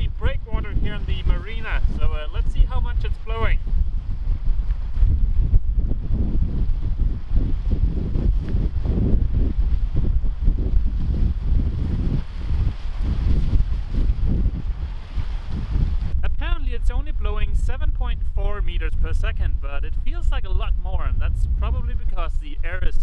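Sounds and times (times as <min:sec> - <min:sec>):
man talking: 0:00.0 - 0:03.6, 0:16.2 - 0:23.0
wind buffeting microphone: 0:00.0 - 0:23.0.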